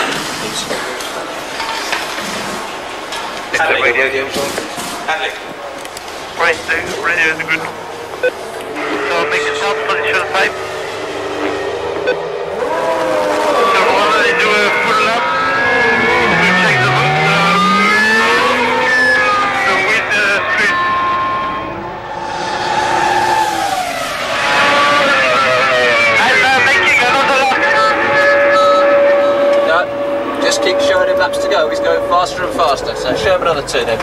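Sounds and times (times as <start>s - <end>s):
racing car engine revving: 0.0s - 34.0s.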